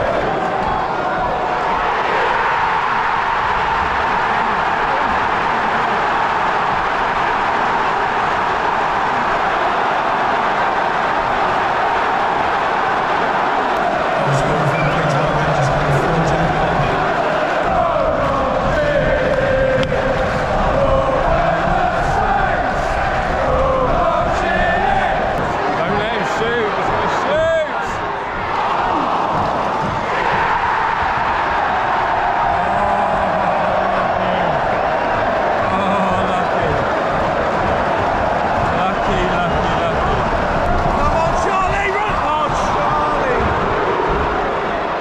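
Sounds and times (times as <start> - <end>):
crowd singing and chanting: 0.0 - 45.0.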